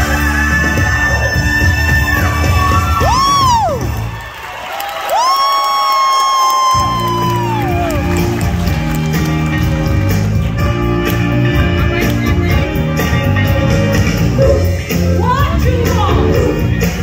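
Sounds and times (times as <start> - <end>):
live band playing: 0.0 - 4.0, 6.7 - 17.0.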